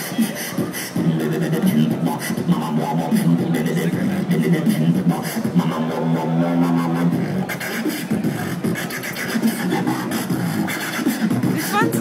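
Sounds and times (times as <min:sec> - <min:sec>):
beatboxing bass drone: 0:00.0 - 0:12.0.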